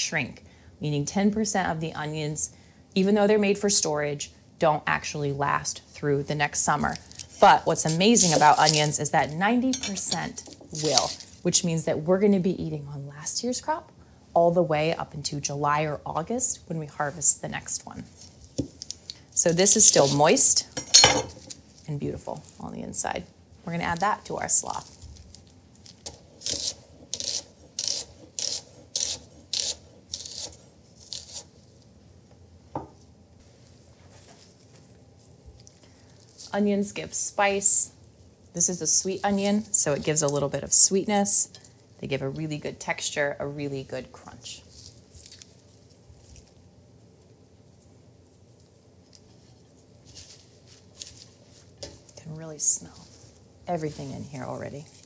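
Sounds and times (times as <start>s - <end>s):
soft crisp crackles: 6.4s - 11.8s, 16.7s - 55.0s
hands tossing cabbage slaw: 6.7s - 9.4s, 18.2s - 20.6s, 47.7s - 55.0s
knife slicing onion on board: 26.0s - 31.5s.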